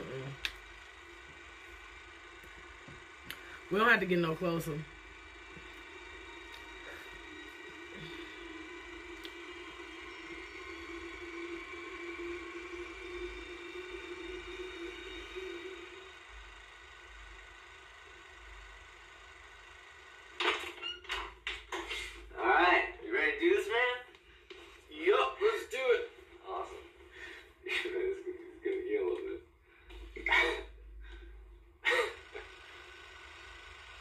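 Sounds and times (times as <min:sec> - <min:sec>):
low sustained drone: 0:00.0 - 0:20.3.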